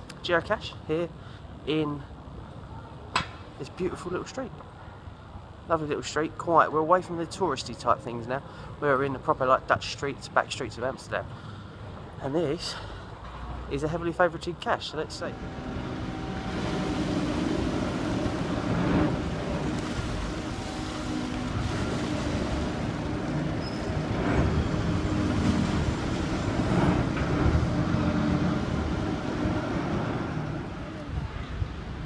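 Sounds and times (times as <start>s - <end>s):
city traffic: 0.0s - 32.0s
vehicles passing: 0.0s - 32.0s
engine running: 15.0s - 31.3s.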